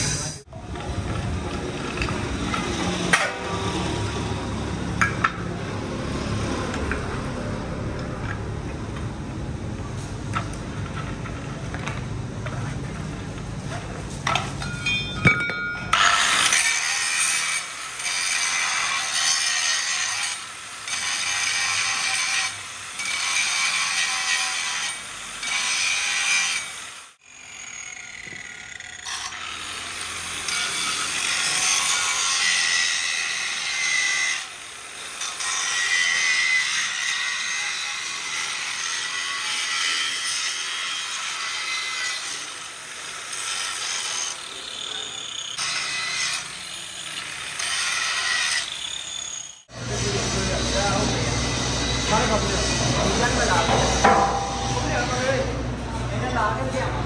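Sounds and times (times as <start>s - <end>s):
angle grinder grinding steel: 0.0s - 0.5s, 14.3s - 55.6s.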